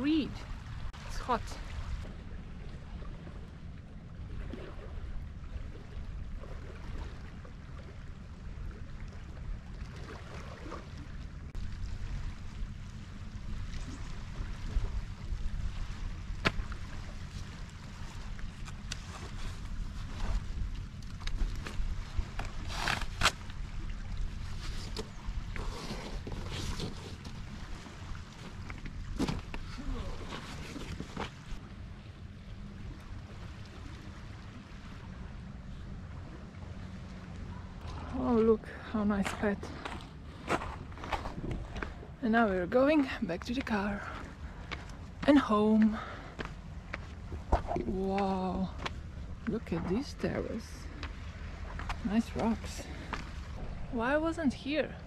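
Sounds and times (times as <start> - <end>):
wind rumble on microphone: 0.0 - 42.3
waves lapping on stony shore: 0.0 - 55.0.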